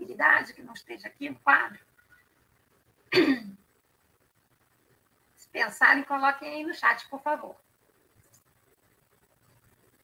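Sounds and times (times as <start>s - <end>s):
woman clearing her throat: 3.1s - 3.6s.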